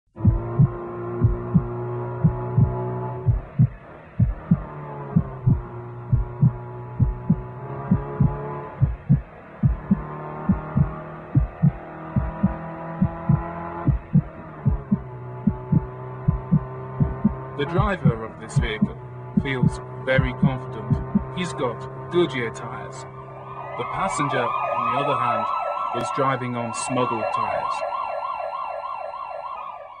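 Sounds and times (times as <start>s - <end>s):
heartbeat thumps: 0.1s - 21.4s
droning hum: 0.2s - 21.4s
ambulance siren yelping: 22.6s - 30.0s.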